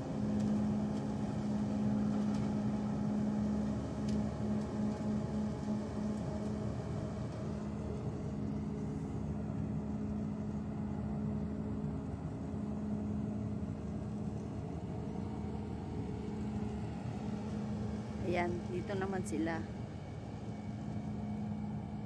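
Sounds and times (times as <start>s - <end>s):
harvester machine drone: 0.0s - 22.0s.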